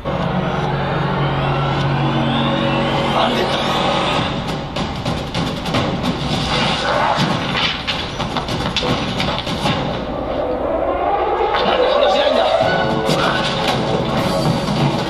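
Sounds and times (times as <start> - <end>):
voice: 3.1 - 3.8, 11.5 - 13.8
rapid clattering sound effects: 4.1 - 10.2, 12.5 - 15.0.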